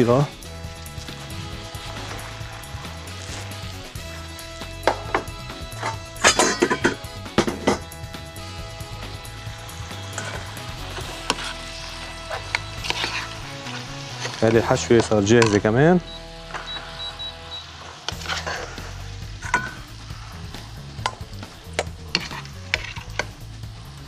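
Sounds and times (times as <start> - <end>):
soft background music: 0.0 - 24.0
metal pans and utensils clattering: 4.8 - 7.9, 10.1 - 11.6, 12.3 - 15.7, 17.9 - 20.0, 21.0 - 23.4.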